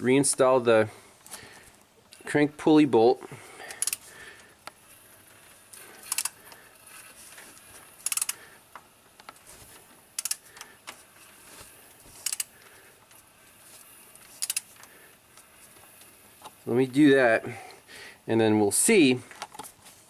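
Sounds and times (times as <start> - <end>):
ratchet wrench clicking: 3.7 - 4.0, 5.8 - 7.0, 7.9 - 8.4, 10.1 - 10.6, 12.2 - 12.5, 14.2 - 14.8.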